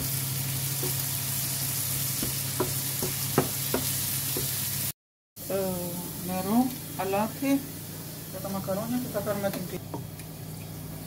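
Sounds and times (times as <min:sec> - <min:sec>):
leeks frying in a pan: 0:00.0 - 0:11.0.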